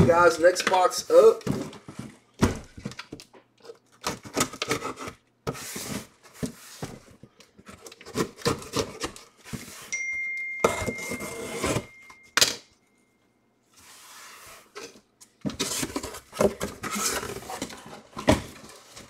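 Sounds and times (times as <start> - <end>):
thin high tone: 9.9 - 13.4
cardboard box scraping and rustling: 10.8 - 12.0, 15.5 - 19.0.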